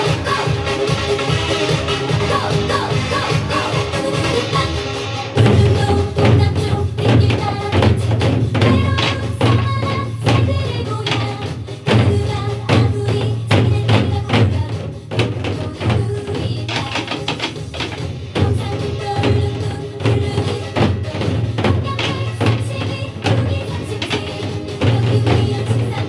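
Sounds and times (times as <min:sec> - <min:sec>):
recorded song backing track: 0:00.0 - 0:26.0
sticks striking barrel drums: 0:05.4 - 0:26.0.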